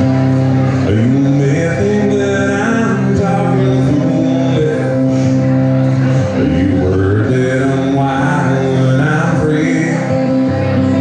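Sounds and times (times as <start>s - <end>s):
country music on electric guitar: 0.0s - 11.0s.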